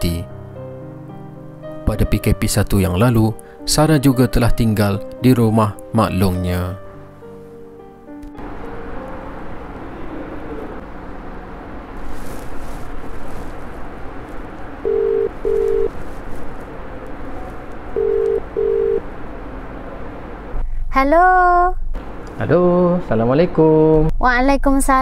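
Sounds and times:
telephone ringback tone: 14.8s - 15.9s, 18.0s - 19.0s.

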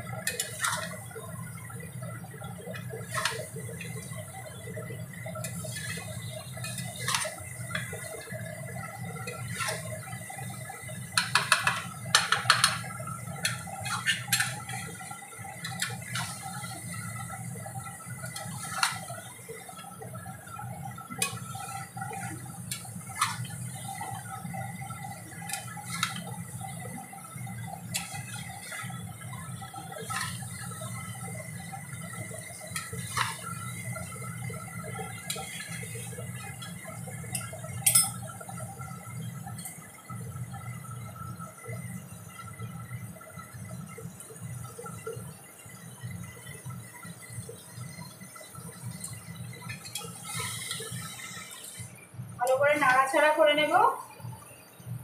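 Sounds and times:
curry sizzling in a pan: 0.0s - 55.0s
spatula scraping and knocking pan: 0.2s - 1.1s, 2.7s - 4.1s, 5.4s - 8.1s, 9.2s - 9.9s, 11.1s - 15.0s, 18.2s - 19.2s, 21.1s - 24.2s, 25.4s - 26.3s, 27.9s - 31.0s, 32.7s - 33.6s.

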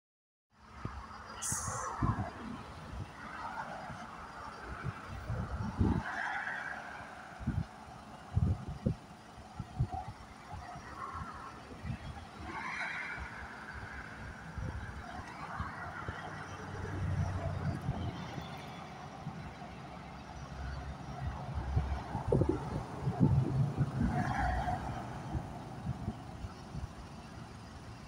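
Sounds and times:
road traffic passing: 0.6s - 28.0s
wind buffeting microphone: 0.8s - 28.0s.

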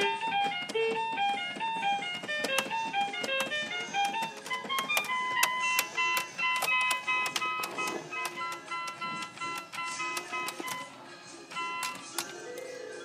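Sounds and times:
toy electronic keyboard notes: 0.0s - 13.0s.

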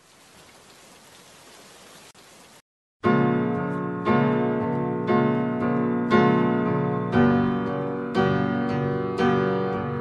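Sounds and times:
faint rain-like hiss: 0.0s - 2.6s.

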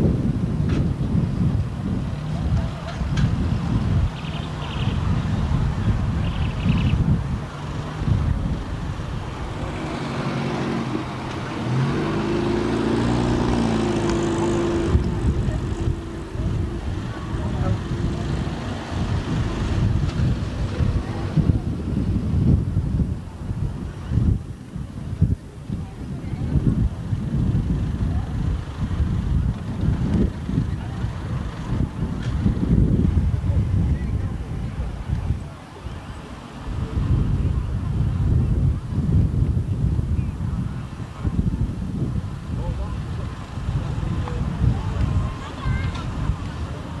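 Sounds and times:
wind buffeting microphone: 0.0s - 47.0s
cars driving past slowly: 0.8s - 24.1s.

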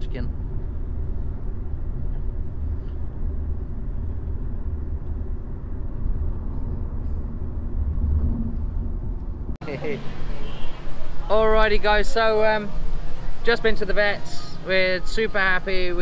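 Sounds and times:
road noise inside car: 0.0s - 14.2s.

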